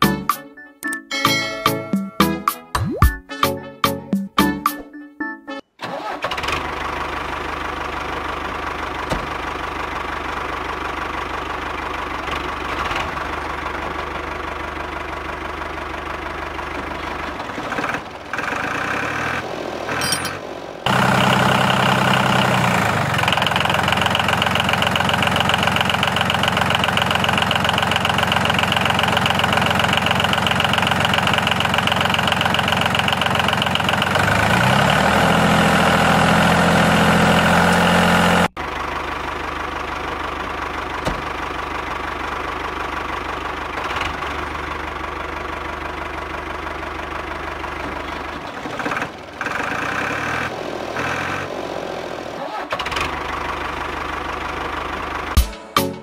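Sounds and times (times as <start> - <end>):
tractor engine running: 5.8 - 55.4.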